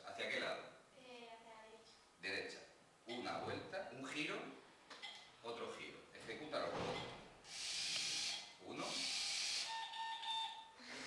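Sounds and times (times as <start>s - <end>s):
breathy hiss: 7.4s - 9.8s.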